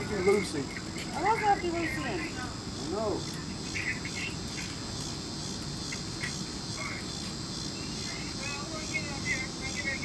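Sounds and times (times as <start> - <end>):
insects singing: 0.0 - 10.0.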